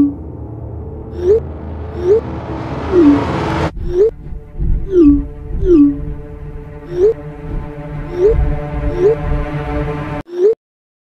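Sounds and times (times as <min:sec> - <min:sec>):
low bass: 0:00.0 - 0:10.2
music with sliding wavering tones: 0:00.0 - 0:10.2.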